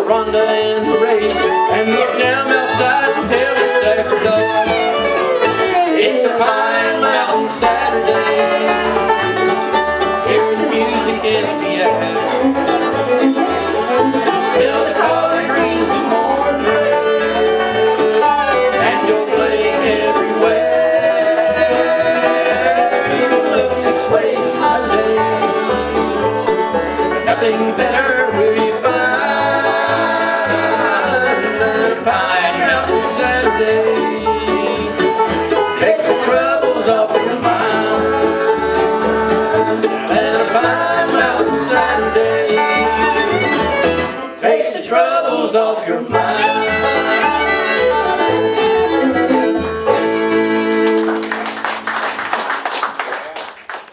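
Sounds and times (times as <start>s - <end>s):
bass line: 0.0s - 44.3s, 44.9s - 51.0s
fiddle: 0.0s - 51.6s
acoustic guitar: 0.0s - 52.3s
mandolin: 0.0s - 52.3s
banjo: 0.0s - 52.5s.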